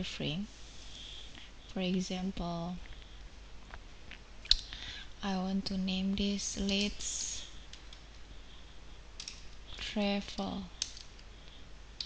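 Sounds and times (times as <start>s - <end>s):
computer mouse clicking: 9.2s - 9.5s, 10.3s - 11.3s.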